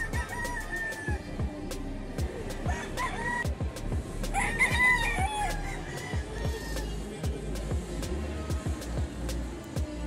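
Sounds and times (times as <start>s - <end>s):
rooster crowing: 0.0s - 1.3s, 2.6s - 3.5s, 4.3s - 7.1s
background music with drum beat: 0.0s - 10.0s.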